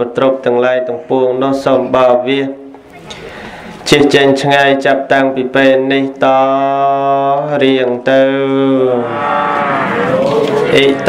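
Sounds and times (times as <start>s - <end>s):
monk chanting: 3.8s - 11.0s.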